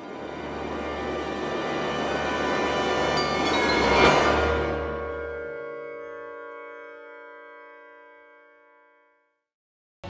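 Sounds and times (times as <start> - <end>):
bell-like jingle chord: 3.1 - 7.4.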